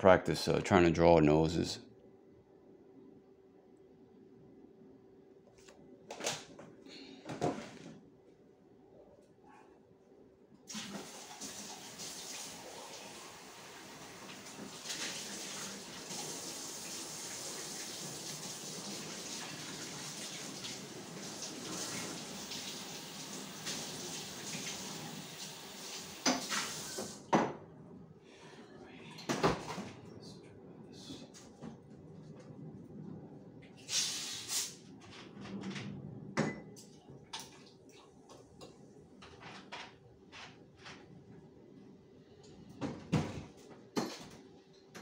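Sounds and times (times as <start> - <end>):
tap water running into sink: 10.7 - 27.2.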